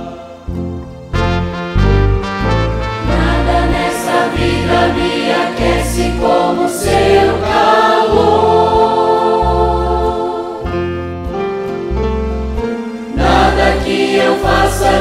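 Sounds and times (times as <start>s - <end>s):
youth choir singing a hymn: 0.0s - 0.8s, 3.0s - 10.9s, 13.1s - 15.0s
instrumental backing: 0.0s - 15.0s.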